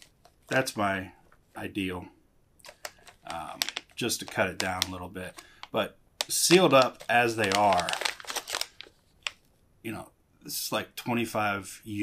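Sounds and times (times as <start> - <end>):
foil pouches crinkling: 2.6 - 9.4.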